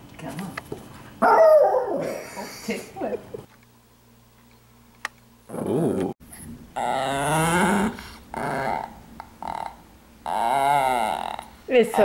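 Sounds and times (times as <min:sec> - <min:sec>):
small dog growling: 0:05.5 - 0:06.2, 0:06.8 - 0:11.7.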